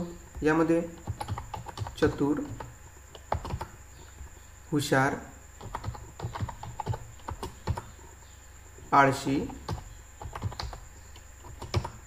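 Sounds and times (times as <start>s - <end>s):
typing on computer keyboard: 0.3s - 3.8s, 5.6s - 7.9s, 9.3s - 12.0s.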